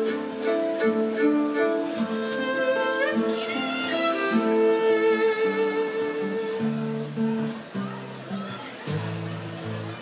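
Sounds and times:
bowed strings: 0:00.0 - 0:07.6
acoustic guitar: 0:00.0 - 0:10.0.

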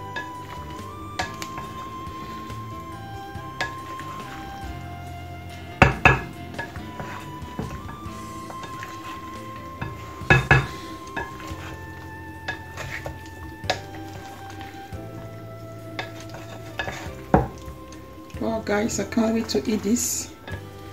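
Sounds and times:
background music: 0:00.0 - 0:20.9.

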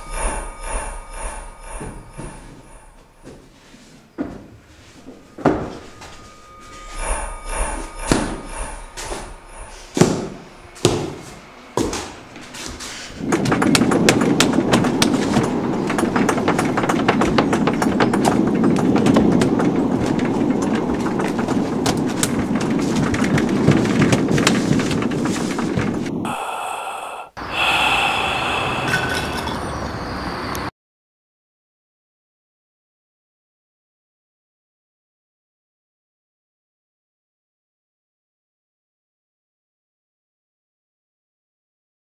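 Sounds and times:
wooden gate rattling: 0:13.2 - 0:26.1.

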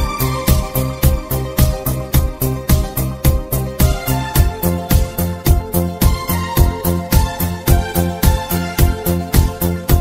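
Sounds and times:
synth disco music: 0:00.0 - 0:10.0.

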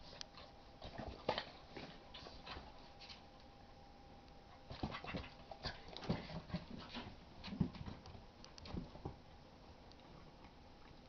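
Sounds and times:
dogs scuffling: 0:04.5 - 0:09.2.

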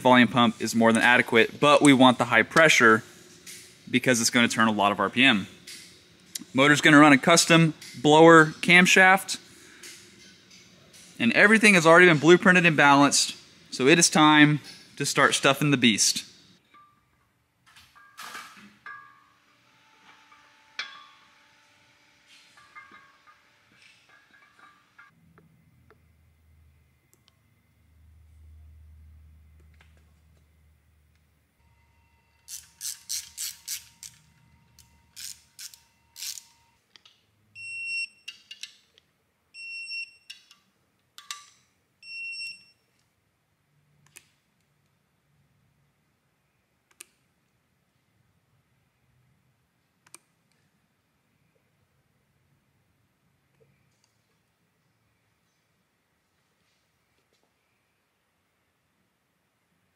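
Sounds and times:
ratchet clicks: 0:32.5 - 0:34.2, 0:35.2 - 0:36.5
clicks and knocks of parts fitted: 0:40.3 - 0:41.7.

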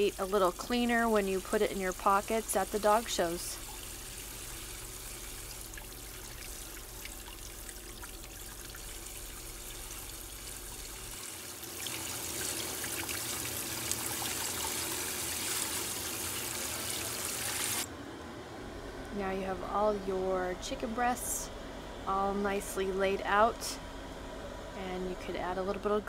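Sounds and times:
tap water running into sink: 0:00.0 - 0:17.8.

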